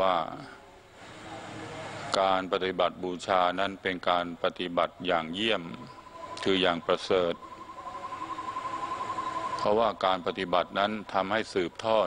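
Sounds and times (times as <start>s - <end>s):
man speaking: 2.2s - 7.4s, 9.6s - 12.0s
pulsing high tone: 4.9s - 12.0s.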